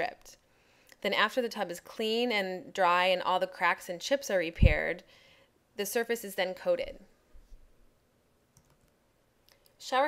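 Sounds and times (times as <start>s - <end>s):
woman speaking: 0.0s - 0.4s, 1.0s - 5.1s, 5.8s - 7.2s, 9.8s - 10.0s.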